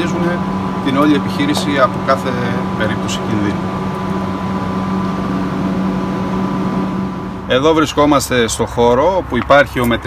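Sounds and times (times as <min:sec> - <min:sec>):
steady machine hum: 0:00.0 - 0:08.5.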